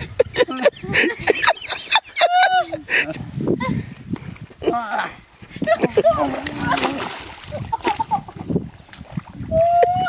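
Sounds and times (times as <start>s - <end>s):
people crying out and yelping: 2.1s - 2.9s, 9.5s - 10.0s
splashing in muddy water: 5.6s - 10.0s.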